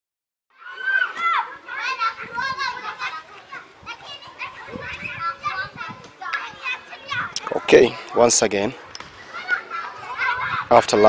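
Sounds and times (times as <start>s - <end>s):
children calling and chattering: 0.5s - 11.0s.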